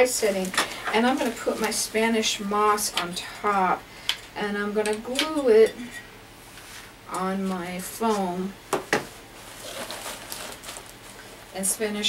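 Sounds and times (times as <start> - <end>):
plastic bag rustling: 0.0 - 2.8, 9.0 - 12.0
dry moss being pulled: 9.4 - 11.7.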